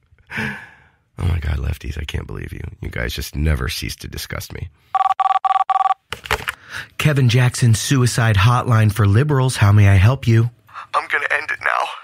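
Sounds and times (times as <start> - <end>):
two-tone telephone beeps: 5.0 - 6.0.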